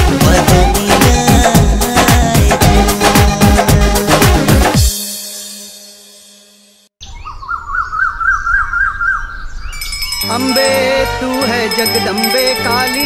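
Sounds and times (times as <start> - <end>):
music: 0.0 - 6.9, 10.2 - 13.0
bird warbling trill: 7.0 - 13.0.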